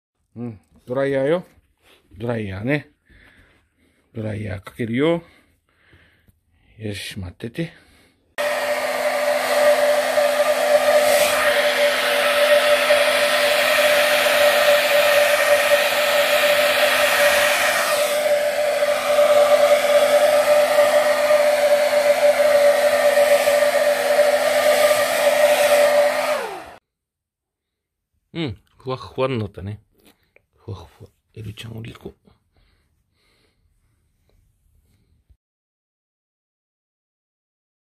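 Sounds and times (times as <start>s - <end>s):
hair dryer blowing: 8.3s - 26.8s
hair dryer motor spinning down: 8.4s - 26.8s.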